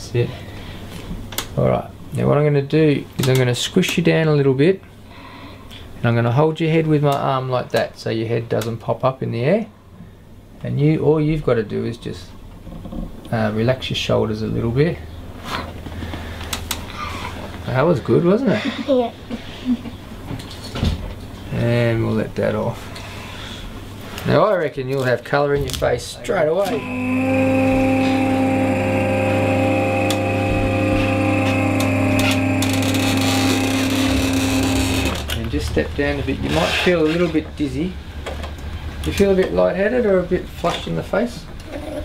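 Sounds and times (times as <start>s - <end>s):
electric table motor humming: 26.6s - 35.4s.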